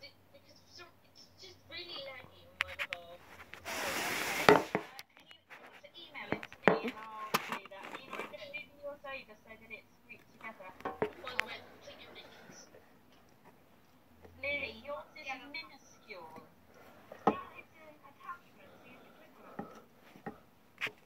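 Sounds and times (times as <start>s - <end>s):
loud hiss burst: 3.6s - 4.8s
quiet voices whispering: 9.4s - 13.0s, 14.4s - 20.4s.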